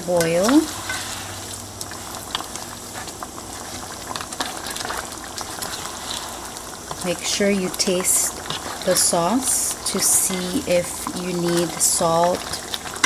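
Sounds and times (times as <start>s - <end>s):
stew bubbling in a pot: 0.0s - 13.0s.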